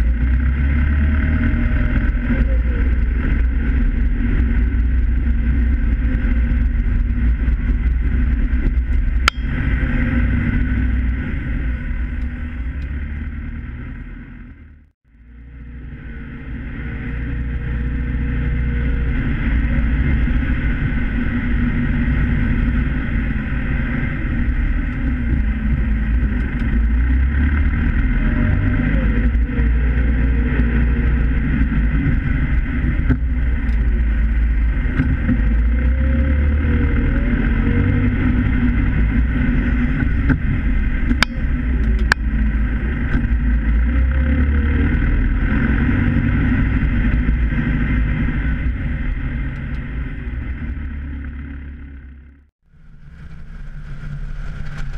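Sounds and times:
tractor diesel engine running: 0.0 - 54.9.

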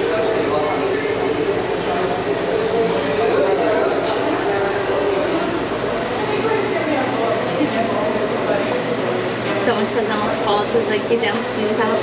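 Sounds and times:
murmur of overlapping voices: 0.0 - 12.0.

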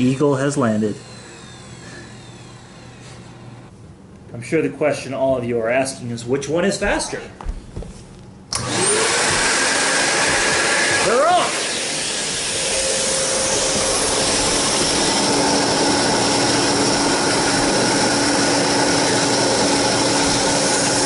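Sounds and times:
vacuum cleaner motor whining: 0.0 - 3.7, 8.5 - 21.0.

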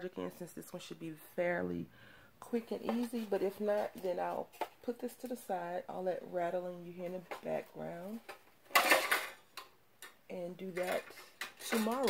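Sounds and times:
clatter of small hard objects: 8.7 - 9.4, 10.7 - 12.0.

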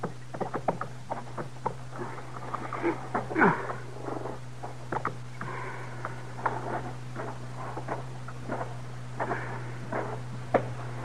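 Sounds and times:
low recording hum: 0.0 - 11.0.

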